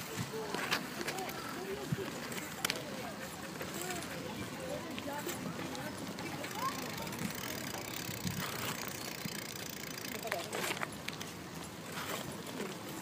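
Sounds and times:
faint indistinct voices: 0:00.0 - 0:13.0.

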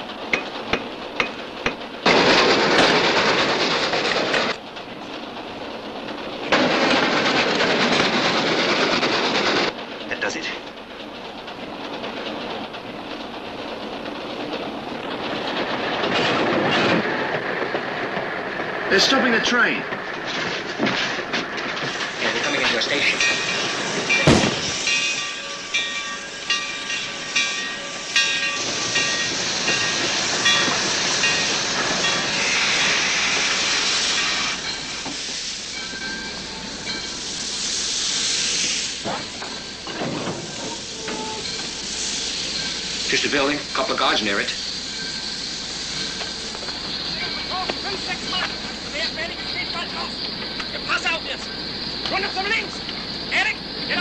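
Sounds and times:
steam hissing: 0:20.6 - 0:54.0
metal clanks: 0:39.0 - 0:43.1
high metallic squeal: 0:39.3 - 0:48.4.

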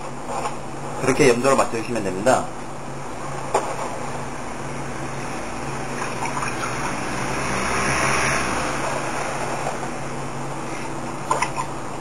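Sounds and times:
low machine hum: 0:00.0 - 0:12.0
rushing noise: 0:04.7 - 0:10.9.

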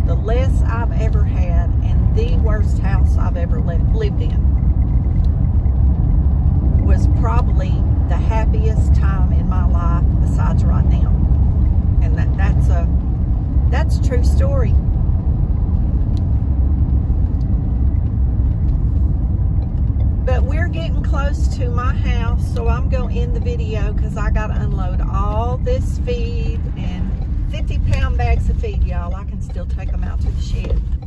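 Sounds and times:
road and engine rumble in car: 0:00.0 - 0:31.0.

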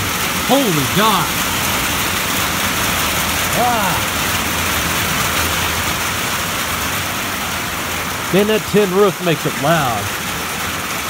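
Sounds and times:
heavy rain on a tin roof: 0:00.0 - 0:11.0.

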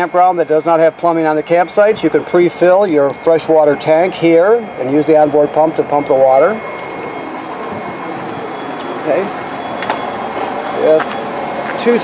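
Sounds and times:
steady rushing hum: 0:00.0 - 0:12.0.

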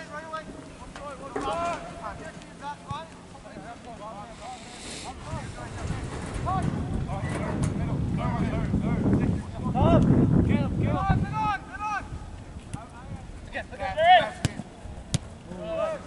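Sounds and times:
distant players shouting: 0:00.0 - 0:04.8, 0:13.7 - 0:16.0
wind buffeting microphone: 0:03.3 - 0:16.0.

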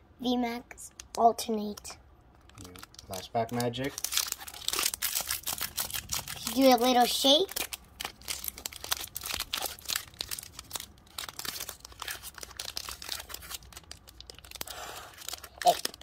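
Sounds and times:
foil wrapper crinkling: 0:02.4 - 0:16.0.

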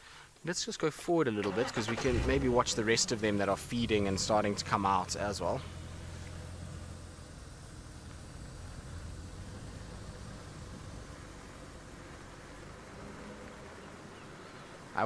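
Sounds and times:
vehicle engine rumbling: 0:01.4 - 0:15.0.

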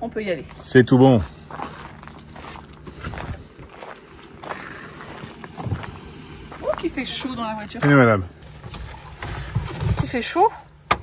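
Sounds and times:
vehicle engine idling: 0:00.0 - 0:11.0
footsteps on dirt: 0:00.3 - 0:10.1.

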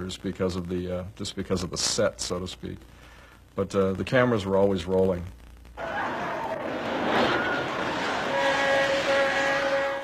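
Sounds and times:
steady rushing noise: 0:05.8 - 0:09.8
horn sounding a held chord: 0:08.2 - 0:10.0.

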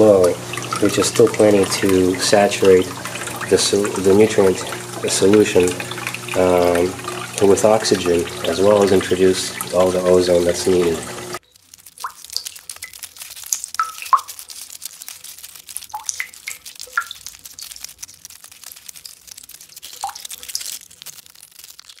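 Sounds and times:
fine crackle of small drips: 0:00.0 - 0:22.0.

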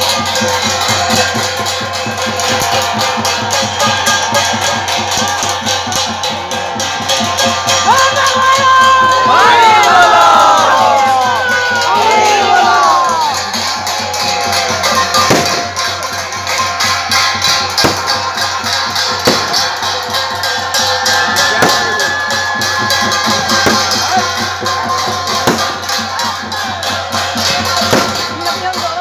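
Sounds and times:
crowd shouting and cheering: 0:00.0 - 0:29.0
fast festival drumming: 0:00.0 - 0:29.0.

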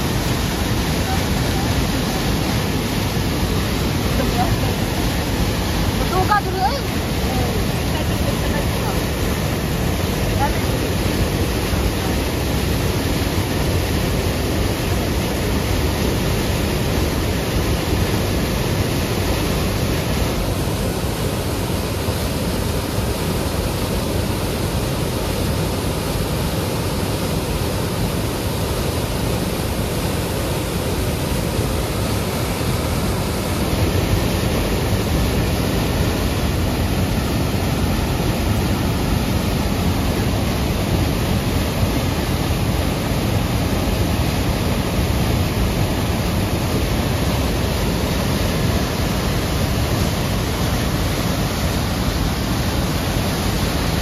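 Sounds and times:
whitewater rushing over boulders: 0:00.0 - 0:54.0.

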